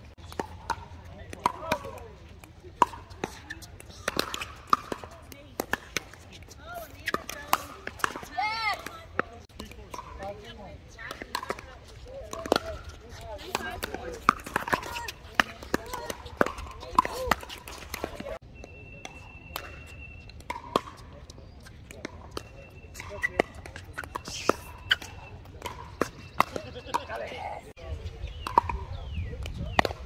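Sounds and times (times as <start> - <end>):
paddles hitting plastic ball: 0.2 - 10.4, 11.0 - 18.4, 29.4 - 30.0
indistinct voices chattering: 1.6 - 20.2, 22.4 - 29.6.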